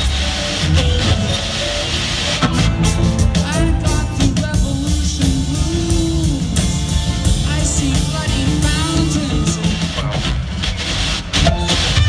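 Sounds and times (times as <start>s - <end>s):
loud amplified rock music: 0.0s - 12.0s.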